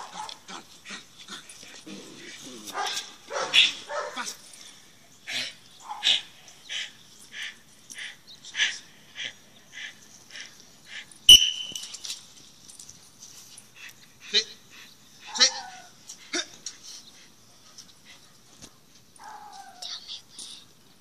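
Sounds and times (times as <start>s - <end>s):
dog yelping: 19.2s - 19.8s.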